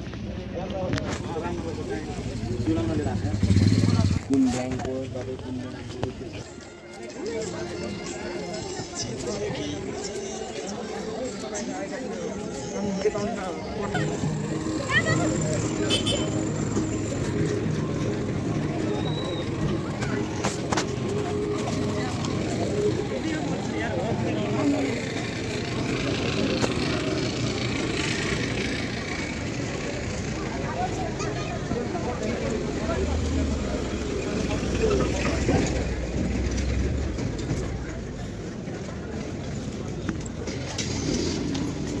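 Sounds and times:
indistinct voices of passers-by: 0.0s - 42.0s
traffic rumble: 0.0s - 42.0s.

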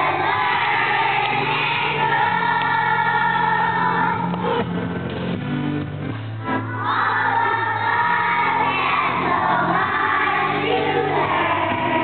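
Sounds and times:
children's choir singing: 0.0s - 4.7s, 6.5s - 12.0s
steady low accompaniment: 0.0s - 12.0s.

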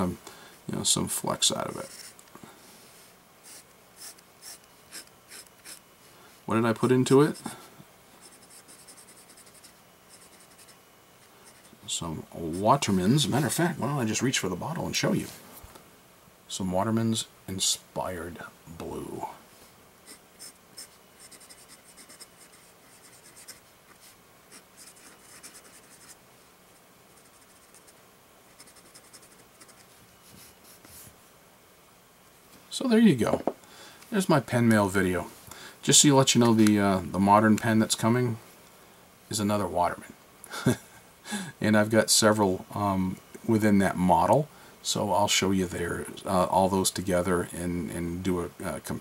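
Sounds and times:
fountain pen scratching on paper: 1.8s - 2.2s, 8.2s - 10.8s, 20.1s - 23.6s, 24.5s - 26.2s, 27.2s - 29.9s.

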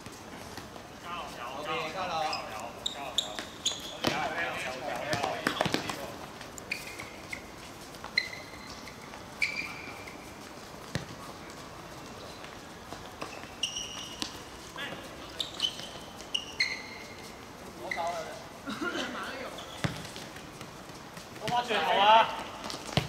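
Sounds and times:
short high-pitched squeaks: 2.2s - 4.0s, 6.7s - 10.2s, 13.2s - 14.4s, 15.3s - 18.4s
ball being kicked: 22.6s - 23.0s.

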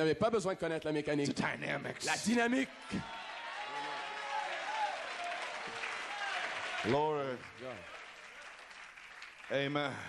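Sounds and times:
congregation applauding: 1.9s - 10.0s.

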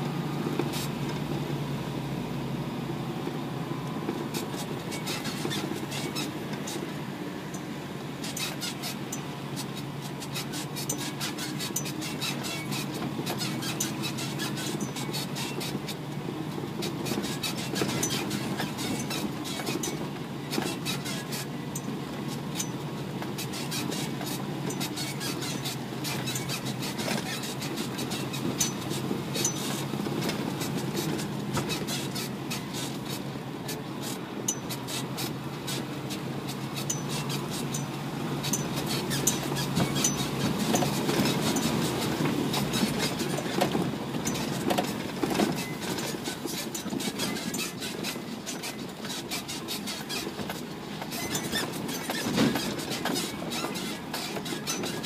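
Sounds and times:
truck engine drone: 0.0s - 55.0s.

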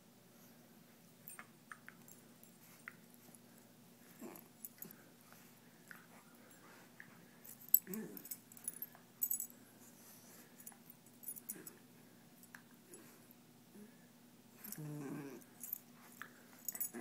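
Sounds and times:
collar tags jingling: 7.4s - 9.6s, 15.5s - 17.0s
dogs growling: 14.6s - 15.5s.

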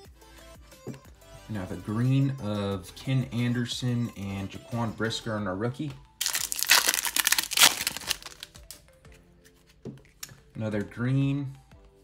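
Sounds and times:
faint background music: 0.0s - 12.0s
cards clicking: 6.2s - 8.8s
foil wrapper crinkling and tearing: 6.2s - 8.8s.

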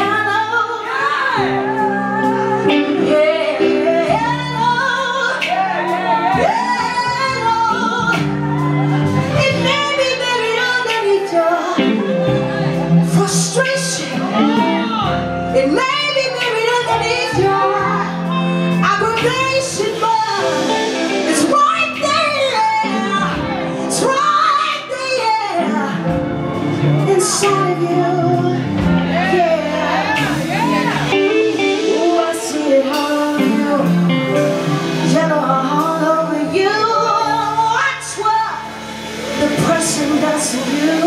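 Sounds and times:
band playing sustained chords: 0.0s - 41.0s
woman singing: 0.0s - 41.0s.

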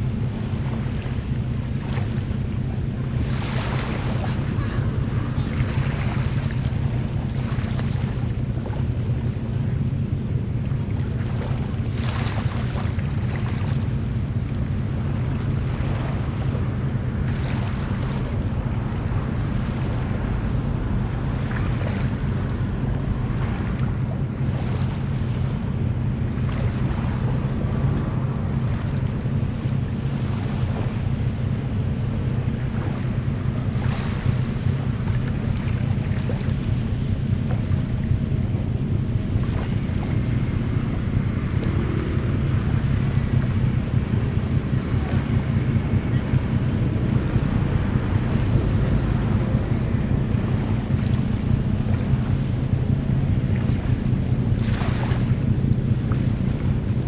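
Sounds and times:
small waves washing: 0.0s - 57.0s
wind rumble on microphone: 0.0s - 57.0s.

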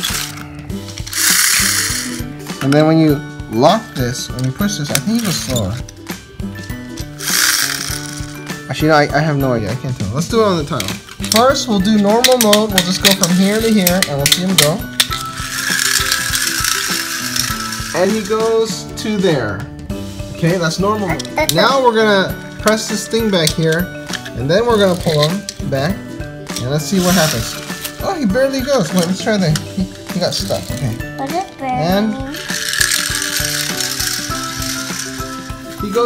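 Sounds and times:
toy car spring motor whirring: 0.0s - 2.2s, 7.0s - 8.4s, 12.3s - 18.3s, 26.9s - 28.0s, 32.3s - 35.8s.

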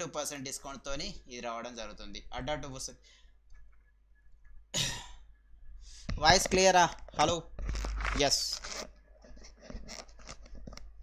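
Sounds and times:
headset microphone handling noise: 5.9s - 11.0s.

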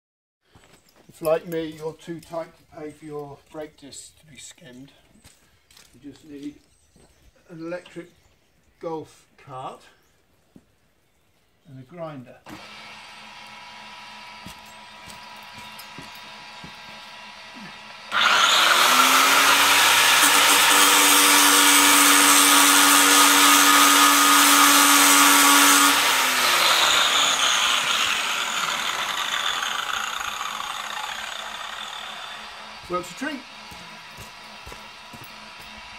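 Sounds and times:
angle grinder motor whine: 12.5s - 35.9s
harsh grinding on metal: 12.5s - 35.9s.

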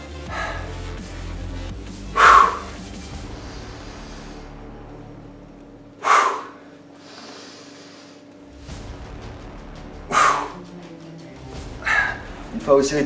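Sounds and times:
background music: 0.0s - 7.1s, 7.8s - 13.0s
man exhaling forcefully: 0.2s - 0.8s, 2.1s - 4.6s, 6.0s - 8.1s, 10.1s - 10.6s.

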